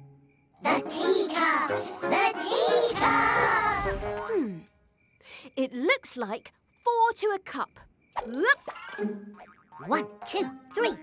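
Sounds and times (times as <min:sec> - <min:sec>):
cartoon springy boing: 0:08.2 - 0:10.4.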